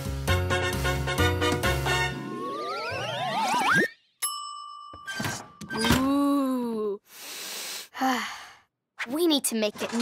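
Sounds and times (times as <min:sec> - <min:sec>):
boy breathing in: 0:07.0 - 0:08.7.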